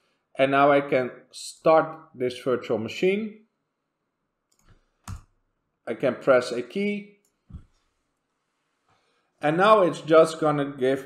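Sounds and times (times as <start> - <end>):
computer key click: 4.5 - 5.3.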